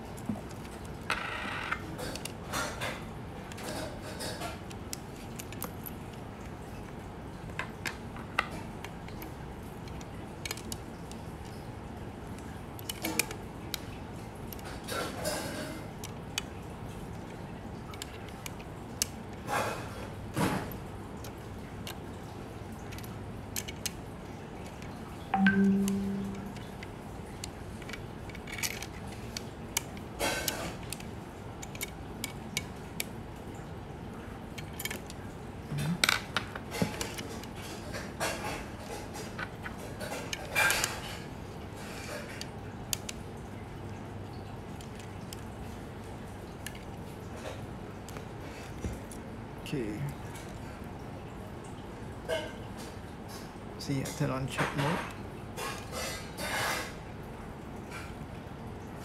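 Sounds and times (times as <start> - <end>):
brief low tone: 25.4 - 26.7.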